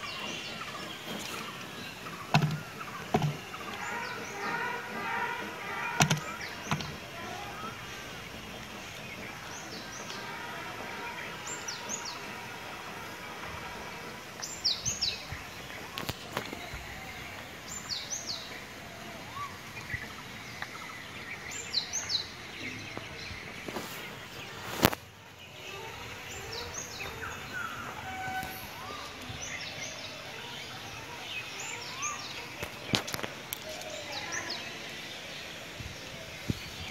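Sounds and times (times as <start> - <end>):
small birds chirping: 0.0 - 13.1, 13.8 - 36.9.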